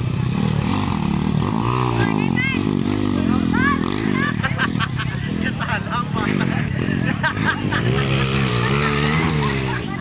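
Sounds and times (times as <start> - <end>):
motorcycle engine running hard: 0.0 - 10.0.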